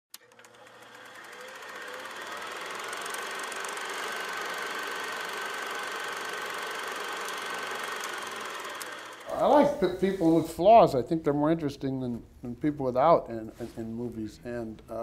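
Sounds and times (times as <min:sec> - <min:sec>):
mechanical whir with fine clatter: 0:00.1 - 0:09.3.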